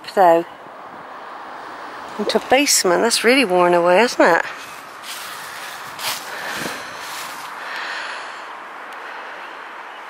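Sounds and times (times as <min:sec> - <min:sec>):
person breathing: 0:04.5 - 0:09.8.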